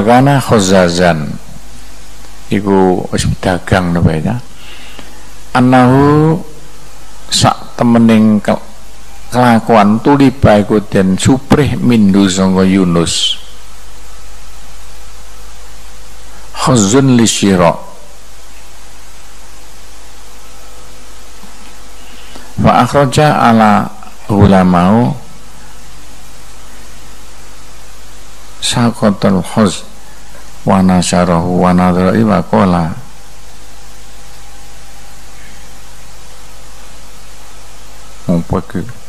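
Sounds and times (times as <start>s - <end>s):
faint low hum: 0.0s - 39.0s
steady hiss: 0.0s - 39.0s.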